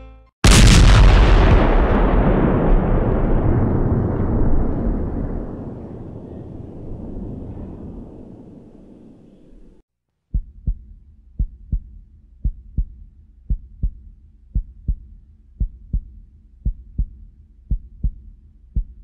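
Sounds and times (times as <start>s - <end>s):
low rumble: 0.4s - 9.8s
heartbeat thumps: 10.3s - 19.0s.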